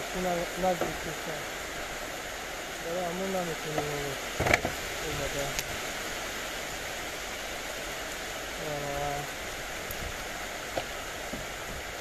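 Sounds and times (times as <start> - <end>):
steady hiss: 0.0 - 12.0
man humming: 8.6 - 9.4.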